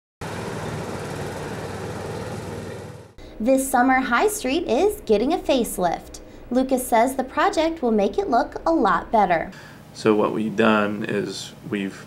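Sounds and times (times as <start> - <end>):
outdoor traffic noise: 0.2 - 3.2
vehicle engine running: 0.2 - 3.2.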